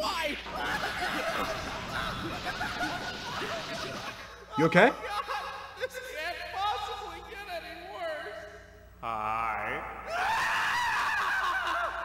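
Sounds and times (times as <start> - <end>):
cartoon character screaming: 10.1 - 12.0.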